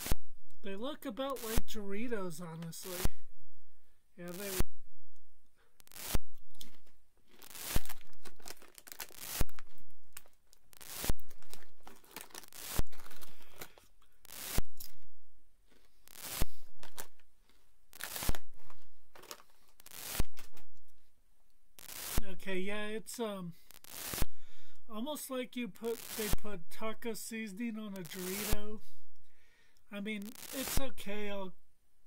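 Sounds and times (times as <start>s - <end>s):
corn chips crunching: 5.9s - 14.5s.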